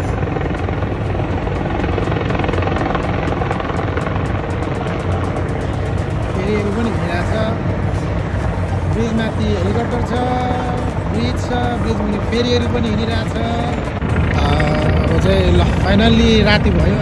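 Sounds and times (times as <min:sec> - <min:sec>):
helicopter rotor blades chopping: 0:00.0 - 0:17.0
man's voice: 0:06.2 - 0:17.0.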